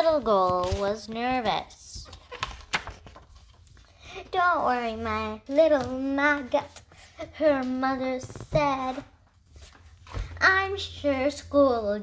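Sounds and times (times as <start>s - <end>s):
book page turning: 0.4s - 3.8s, 7.6s - 10.3s.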